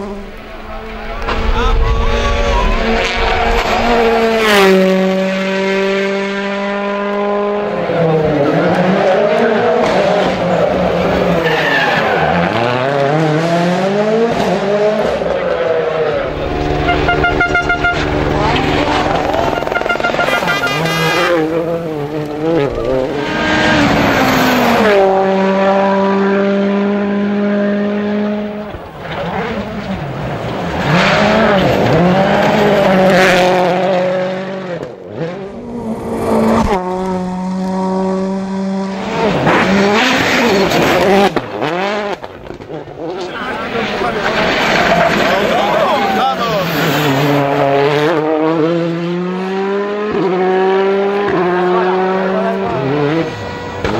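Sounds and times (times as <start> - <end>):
rally car engines revving: 0.0 - 53.9.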